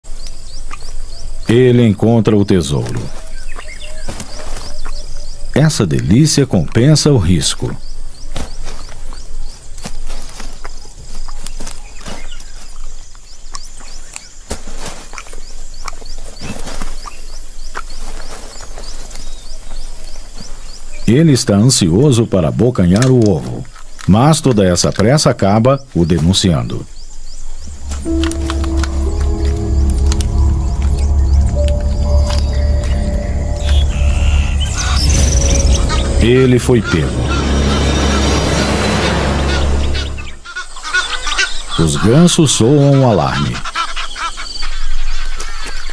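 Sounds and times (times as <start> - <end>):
small birds chirping: 0.0 - 36.2
high insect drone: 26.9 - 40.4
short repeating chirp: 27.8 - 37.6.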